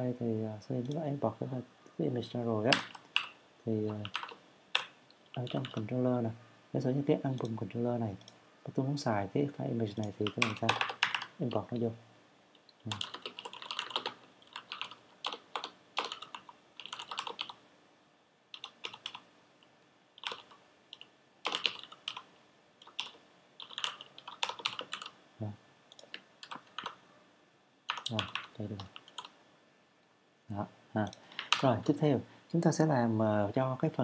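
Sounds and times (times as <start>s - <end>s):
typing on computer keyboard: 2.7s - 5.9s, 10.0s - 11.3s, 12.9s - 17.6s, 18.5s - 19.2s, 20.2s - 25.2s, 25.9s - 27.0s, 27.9s - 29.3s.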